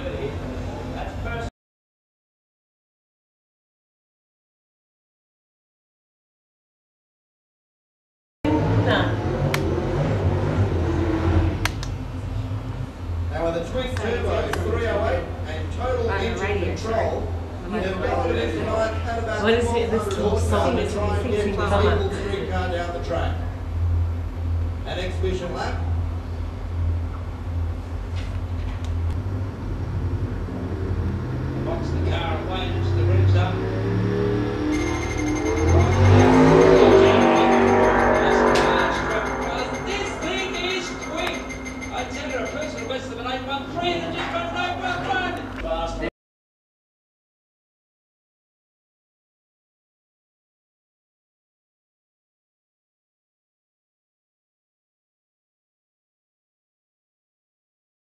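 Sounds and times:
car engine running low: 8.5 - 16.1, 21.6 - 43.0
drag car launching at full throttle: 34.0 - 41.0.

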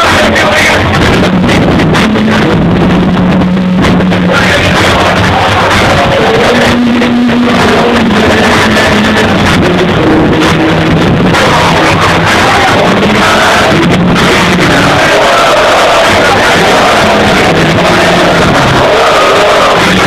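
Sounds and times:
loud club music with bass: 0.0 - 20.0.

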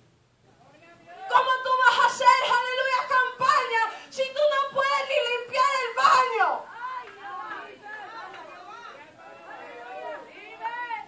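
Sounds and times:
woman chanting through microphone: 1.3 - 9.0.

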